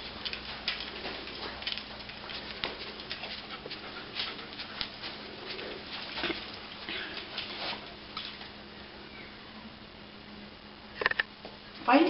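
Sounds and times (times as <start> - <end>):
dog panting: 0.1 - 6.9.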